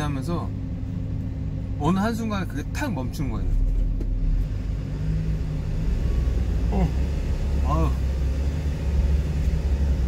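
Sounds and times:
truck engine rumble: 0.0 - 10.0.

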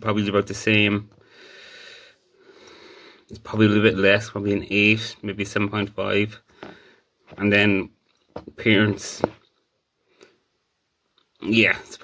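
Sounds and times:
person breathing close to microphone: 1.2 - 3.3, 6.5 - 7.1.

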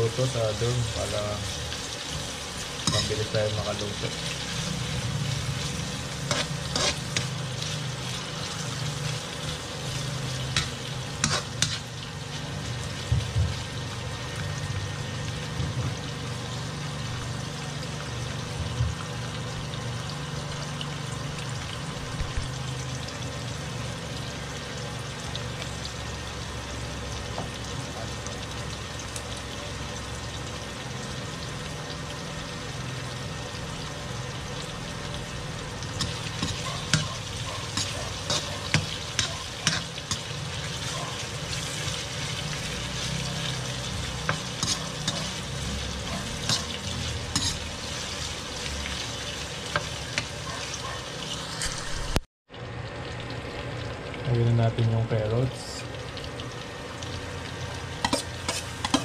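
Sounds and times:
onion sizzling in oil: 0.0 - 59.0
metal spoon scraping wok: 2.8 - 3.4, 4.3 - 11.9, 35.9 - 48.2, 58.0 - 59.0.

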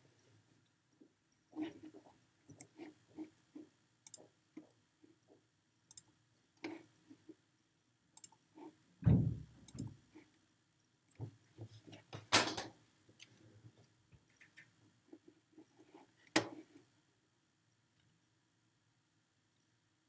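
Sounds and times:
small clicks and knocks: 1.0 - 7.4, 9.6 - 10.3.

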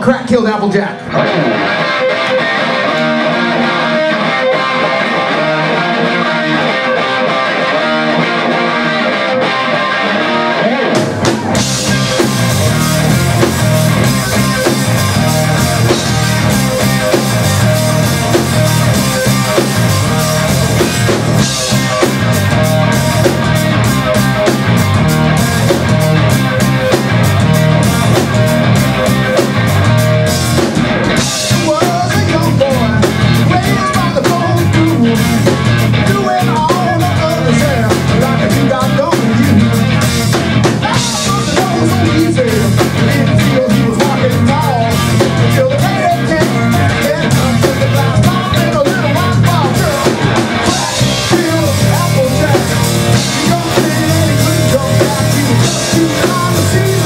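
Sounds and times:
electric guitar riff: 0.0 - 57.0
rock band playing: 0.0 - 57.0.

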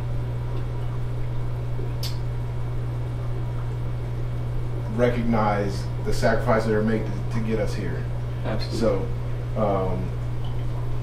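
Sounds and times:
aquarium filtration hum: 0.0 - 11.0.

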